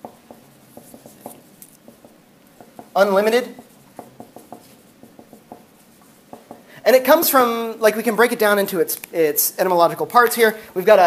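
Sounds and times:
marker writing on whiteboard: 0:00.0 - 0:07.7
man talking: 0:03.0 - 0:03.6, 0:06.8 - 0:11.0.

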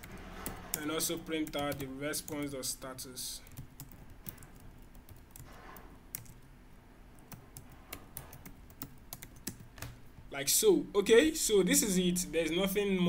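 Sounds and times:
computer keyboard typing: 0:00.0 - 0:02.6, 0:03.4 - 0:06.5, 0:07.1 - 0:10.3.

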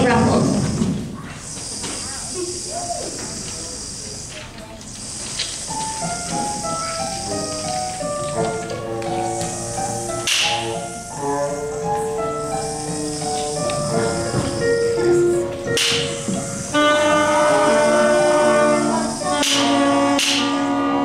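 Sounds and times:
rain stick hissing: 0:01.3 - 0:21.0
brass and saxophone held notes: 0:06.0 - 0:21.0.

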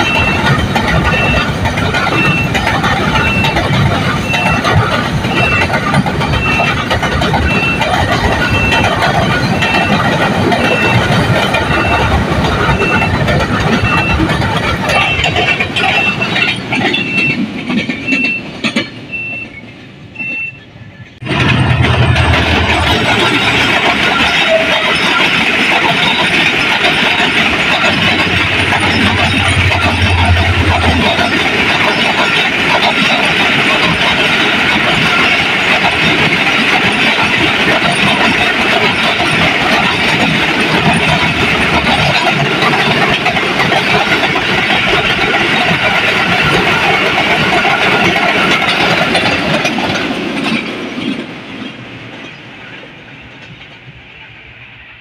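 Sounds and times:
train wheels clattering on rails: 0:00.0 - 0:54.5
diesel locomotive engine drone: 0:00.0 - 0:55.0.

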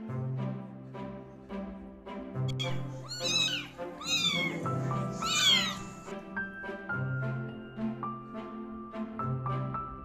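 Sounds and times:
background music: 0:00.0 - 0:10.0
kitten mewing: 0:02.5 - 0:06.1.

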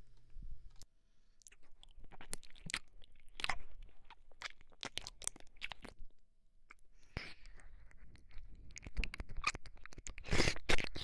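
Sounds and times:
wet mouth clicks and smacks: 0:00.8 - 0:06.0, 0:06.7 - 0:11.0.

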